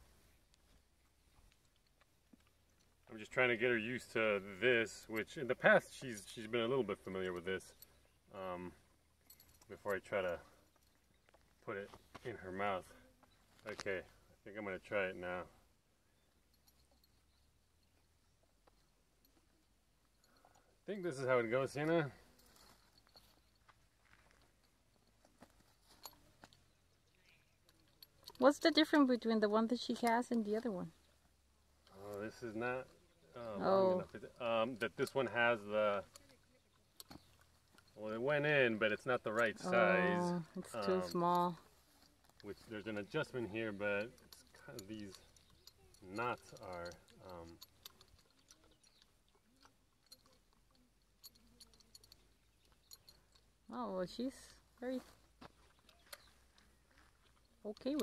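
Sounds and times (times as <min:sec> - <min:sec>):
faint clicks and rustles: 0:00.0 - 0:58.0
horse chewing on metal bit: 0:22.3 - 0:32.1, 0:34.4 - 0:38.0, 0:40.4 - 0:53.7, 0:55.6 - 0:58.0.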